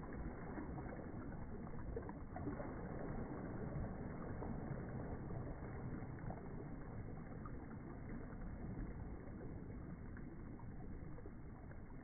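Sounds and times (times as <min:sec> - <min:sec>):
rushing water: 0:00.0 - 0:12.0
wind: 0:00.0 - 0:12.0.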